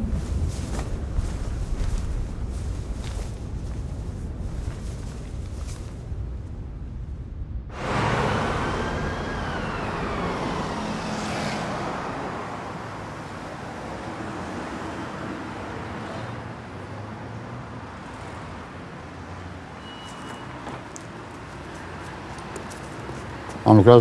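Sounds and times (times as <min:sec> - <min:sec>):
high whine: 0:00.0 - 0:14.1
steady traffic noise: 0:00.0 - 0:24.0
car passing close by: 0:07.7 - 0:24.0.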